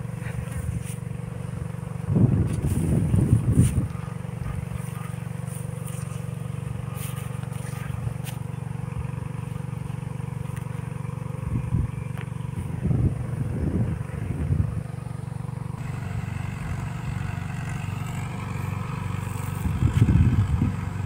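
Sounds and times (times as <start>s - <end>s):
tractor engine running: 0.0s - 21.0s.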